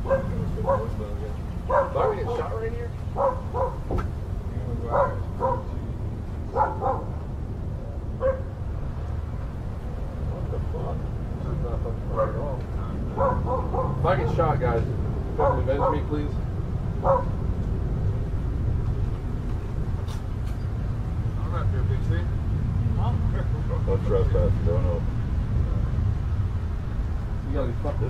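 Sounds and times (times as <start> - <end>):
dog barking: 0.0 - 1.0, 1.7 - 2.6, 3.2 - 3.9, 4.9 - 5.8, 6.5 - 7.2, 8.2 - 8.5, 12.1 - 12.4, 13.1 - 14.1, 15.4 - 16.1, 17.0 - 17.4.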